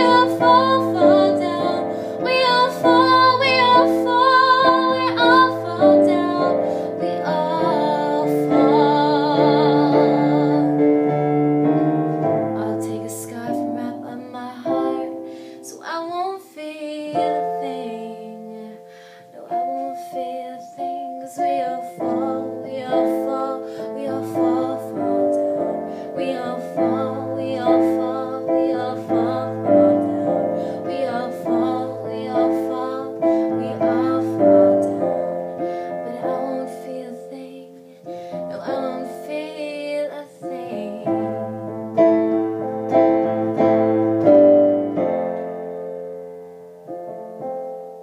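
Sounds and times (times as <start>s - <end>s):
woman singing with vibrato: 0.0s - 42.0s
piano chords: 0.0s - 48.0s.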